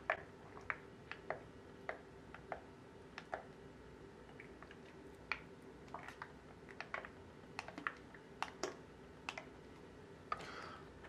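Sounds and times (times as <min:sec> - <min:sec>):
eating clicks and smacks: 0:00.0 - 0:03.6, 0:04.2 - 0:09.6.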